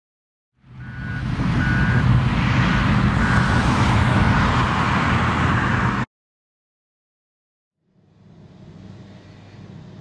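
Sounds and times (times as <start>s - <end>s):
vehicle engine running: 7.8s - 10.0s.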